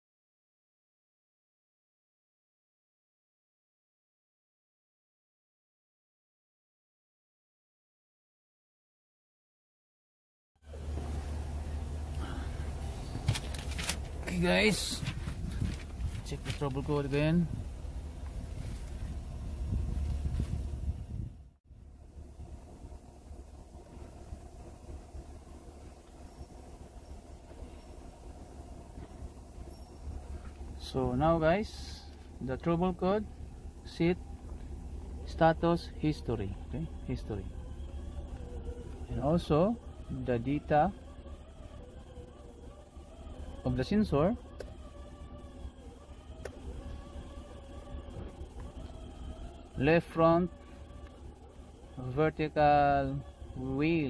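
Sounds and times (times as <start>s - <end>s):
low steady rumble: 10.6s - 54.0s
vehicle engine idling: 10.6s - 54.0s.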